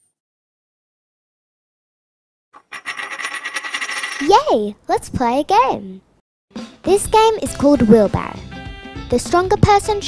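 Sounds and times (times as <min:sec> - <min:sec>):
metal coin spinning and rattling: 0:02.6 - 0:04.5.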